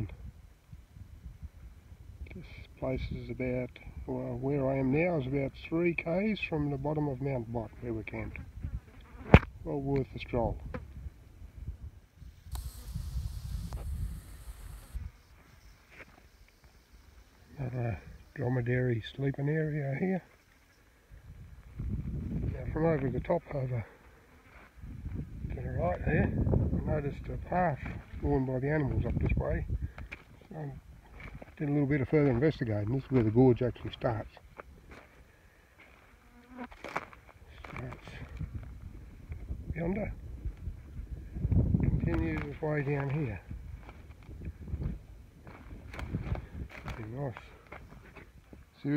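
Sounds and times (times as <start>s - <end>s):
wind buffeting microphone: 0.0s - 4.1s, 8.3s - 8.9s, 9.5s - 15.2s, 21.1s - 23.4s, 24.8s - 30.1s, 38.0s - 47.2s
fly buzzing: 8.6s - 9.5s, 12.2s - 18.4s, 36.1s - 36.8s
hiss: 12.3s - 17.4s
sharp clicks: 12.4s - 15.1s.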